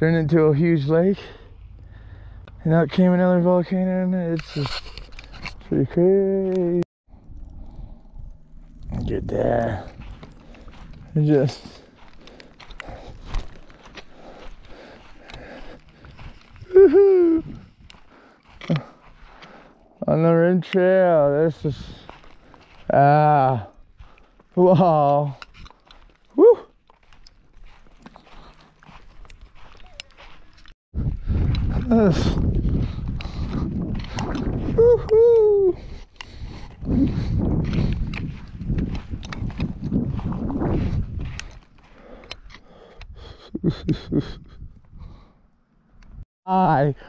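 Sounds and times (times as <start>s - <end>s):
footsteps crunching on gritty sand: 8.5s - 43.4s.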